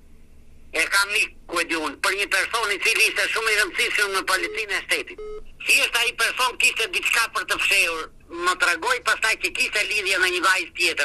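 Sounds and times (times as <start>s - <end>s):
pitch-altered voice over telephone: 0.8s - 11.0s
short beep tone: 5.2s - 5.4s.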